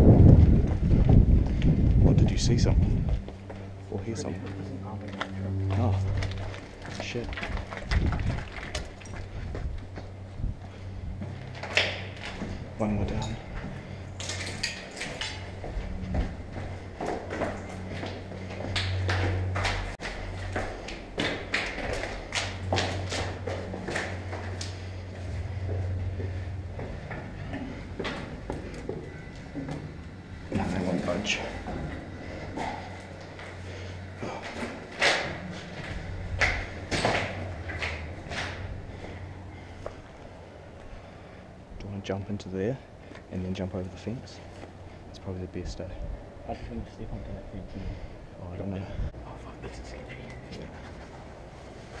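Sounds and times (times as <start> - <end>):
hurried footsteps on concrete stairs: 0.0 - 2.2, 2.8 - 41.2
low drone: 0.0 - 52.0.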